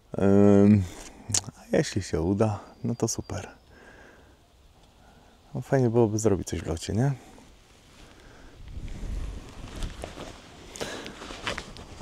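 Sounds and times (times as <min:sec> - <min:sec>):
clothing rustling on microphone: 0:07.6 - 0:12.0.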